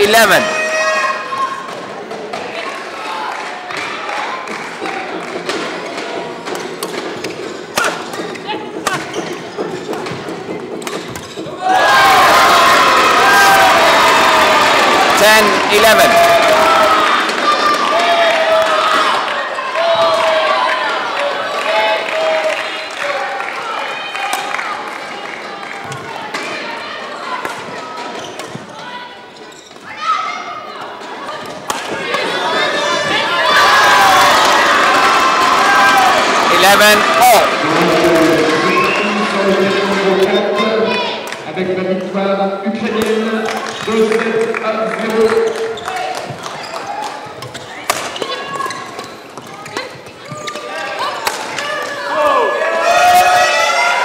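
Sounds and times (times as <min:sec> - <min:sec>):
crowd shouting and cheering: 0:00.0 - 0:54.0
racket striking shuttlecock: 0:47.0 - 0:48.4.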